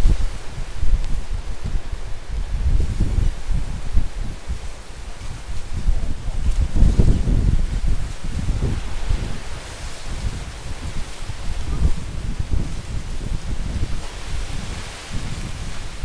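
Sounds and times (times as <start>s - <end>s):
palm fronds rustling in wind: 0.0s - 16.0s
wind rumbling on microphone: 0.0s - 16.0s.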